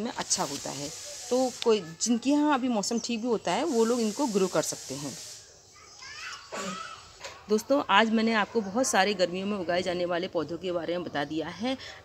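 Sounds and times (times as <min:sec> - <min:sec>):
children's voices at play: 0:01.2 - 0:03.0, 0:05.6 - 0:10.1
child calling out: 0:05.8 - 0:07.1.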